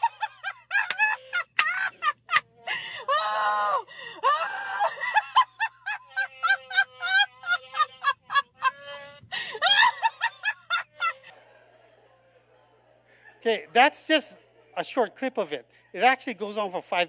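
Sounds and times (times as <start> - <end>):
woman laughing: 0.0 - 11.4.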